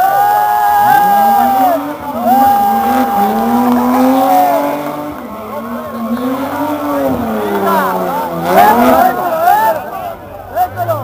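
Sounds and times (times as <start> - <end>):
racing car engine accelerating: 0.7 - 11.0.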